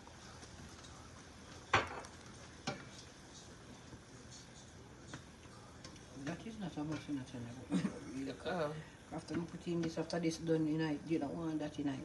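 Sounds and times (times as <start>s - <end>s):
stew simmering with faint sizzle: 0.0s - 12.0s.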